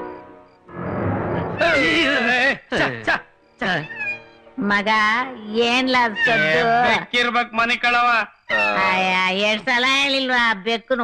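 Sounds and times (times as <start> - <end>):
film background score: 0.0 - 11.0
man's voice: 6.3 - 9.0.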